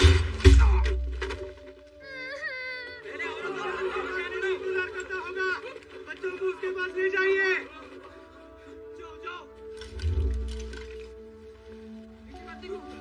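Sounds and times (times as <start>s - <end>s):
background music with held notes: 0.0s - 13.0s.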